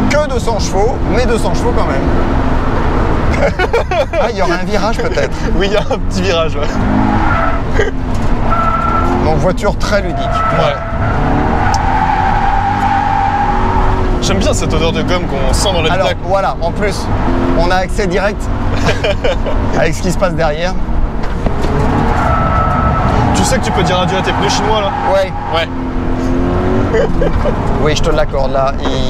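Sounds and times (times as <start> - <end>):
car engine under load: 0.0 - 29.0
tyres squealing: 6.6 - 15.2, 21.5 - 27.9.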